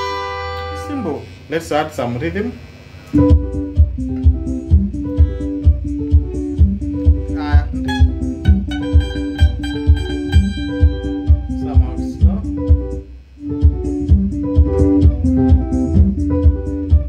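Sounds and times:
electric guitar picking: 0:00.0 - 0:01.5, 0:03.0 - 0:17.0
steady low beat: 0:02.6 - 0:17.0.

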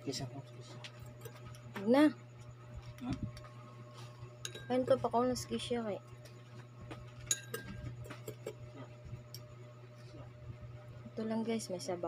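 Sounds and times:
faint low hum: 0:00.0 - 0:12.0
metal spoon clinking: 0:04.4 - 0:05.0, 0:07.3 - 0:07.9.

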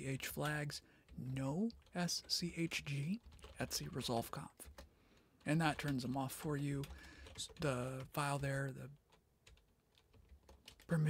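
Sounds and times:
man talking: 0:00.0 - 0:04.7, 0:05.4 - 0:09.0.

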